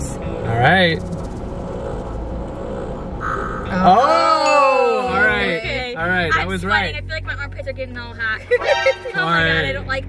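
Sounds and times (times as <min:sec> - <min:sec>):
car interior rumble: 0:00.0 - 0:04.4, 0:05.8 - 0:10.0.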